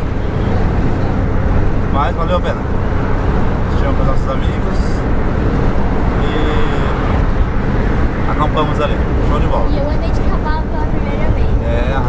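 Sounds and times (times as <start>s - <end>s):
van road and engine rumble: 0.0s - 12.0s.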